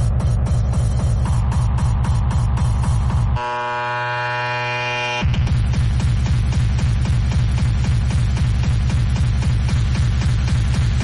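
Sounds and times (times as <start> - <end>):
pounding kick drum: 0.0 - 3.4, 5.2 - 11.0
long held synth sound: 3.4 - 5.3.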